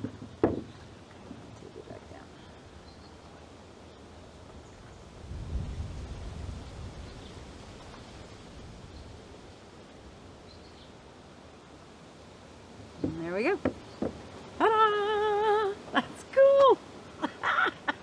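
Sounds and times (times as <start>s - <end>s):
steady hiss: 0.0s - 18.0s.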